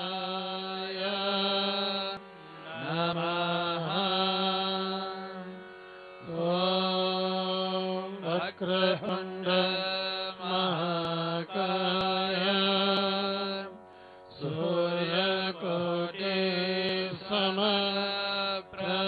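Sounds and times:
person chanting a mantra: 0.0 - 5.6, 6.2 - 19.0.

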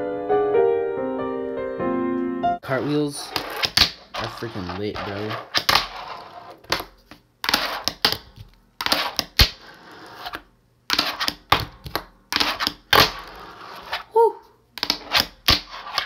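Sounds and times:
fingerboard rolling on wooden desk: 2.8 - 6.9, 8.8 - 10.4, 12.4 - 14.0.

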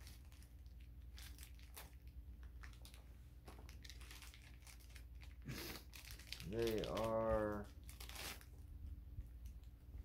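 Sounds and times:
packaging crinkling: 0.0 - 8.7.

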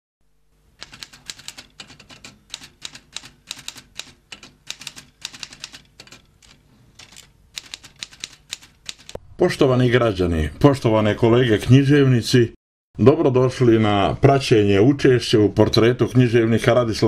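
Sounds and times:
typing keystroke clicks: 0.8 - 9.2.

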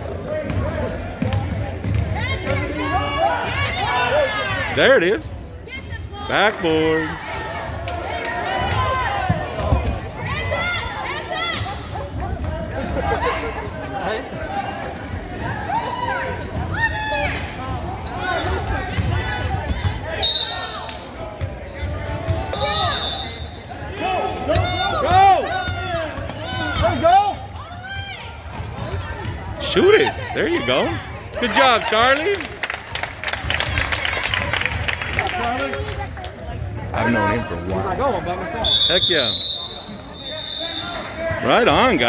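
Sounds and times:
voices echoing in gym: 0.0 - 42.0.

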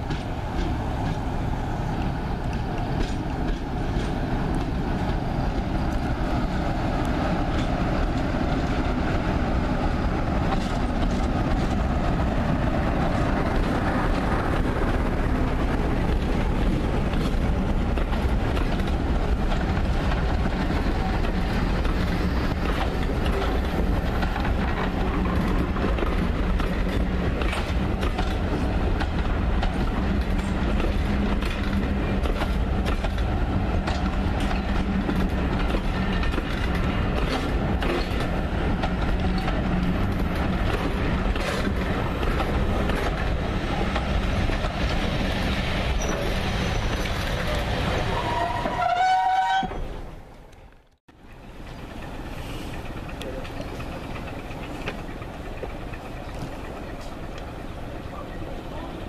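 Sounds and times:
diesel locomotive engine: 0.0 - 59.0
train coaches rumbling: 0.0 - 59.0
wheels clicking over rail joints: 0.0 - 59.0.

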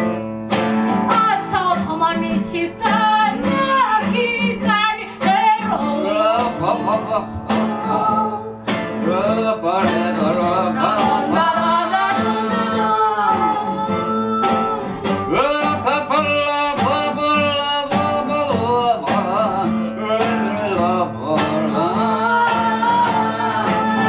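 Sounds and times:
acoustic guitars strummed: 0.0 - 24.0
woman singing: 1.0 - 9.2, 10.0 - 16.2, 21.0 - 24.0.

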